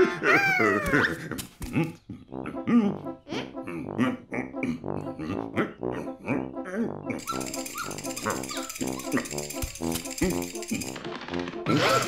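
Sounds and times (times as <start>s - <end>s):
cartoon dog whining: 0.0s - 1.4s, 5.2s - 10.6s, 11.7s - 12.0s
cartoon dog yipping: 0.0s - 1.4s, 7.1s - 10.4s, 11.7s - 12.0s.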